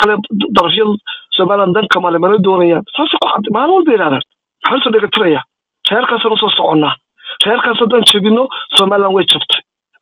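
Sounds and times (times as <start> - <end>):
person talking: 0.0 - 9.6.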